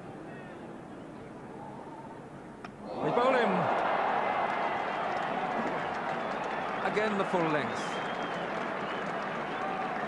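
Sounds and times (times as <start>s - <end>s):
crowd cheering and shouting: 2.9s - 7.5s.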